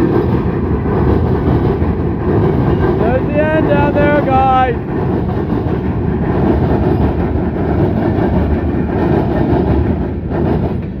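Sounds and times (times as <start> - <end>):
freight train wheels rumbling on rail: 0.0 - 11.0.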